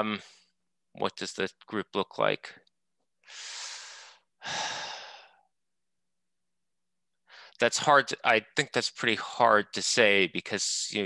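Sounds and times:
person sighing breath: 3.3s - 5.5s.

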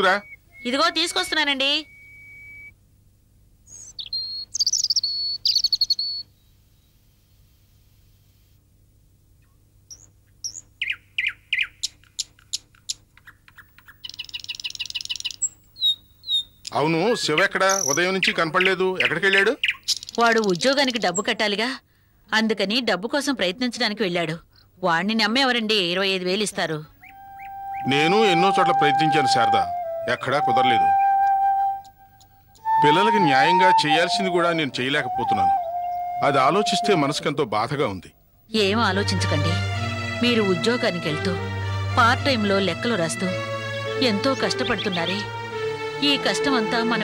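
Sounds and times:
birds chirping and trilling: 0.0s - 2.6s, 3.7s - 6.9s, 9.4s - 21.4s, 26.6s - 38.0s, 38.7s - 47.0s
flute holding a long note: 27.1s - 37.4s, 38.7s - 46.0s
thin steady high tone: 27.1s - 37.4s
person speaking: 27.8s - 31.0s, 32.6s - 35.6s, 36.2s - 45.4s, 46.0s - 47.0s.

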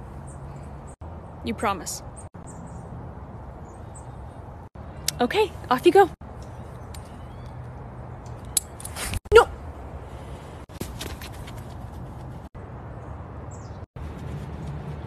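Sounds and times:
woman shouting: 9.3s - 9.6s.

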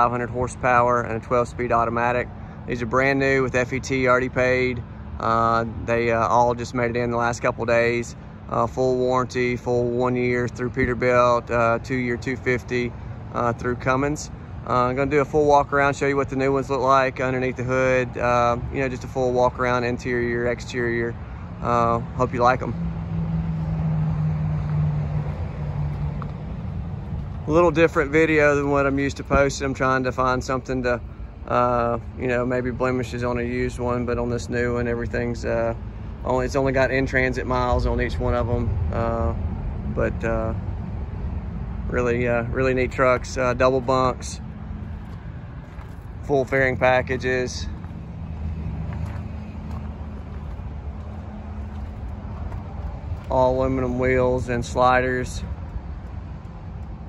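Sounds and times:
truck engine idling: 25.1s - 57.0s.

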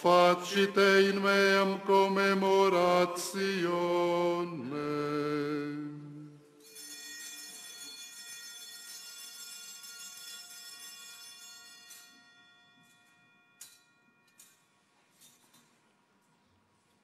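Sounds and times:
bell ringing: 6.6s - 14.8s.

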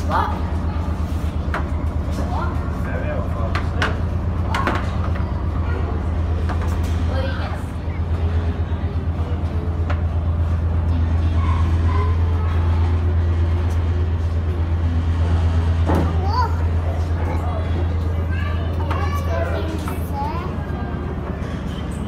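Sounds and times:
ferry engines droning: 0.0s - 22.0s.

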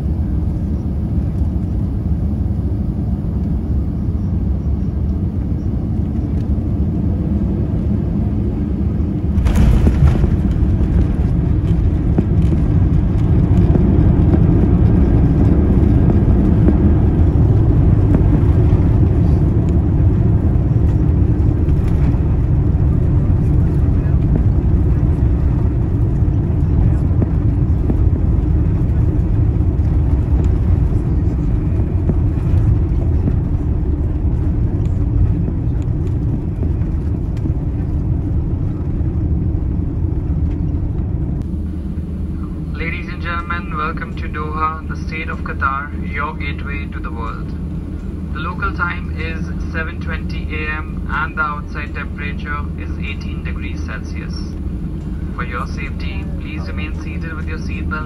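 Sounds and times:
jet engines and wheels roaring: 0.0s - 58.0s.

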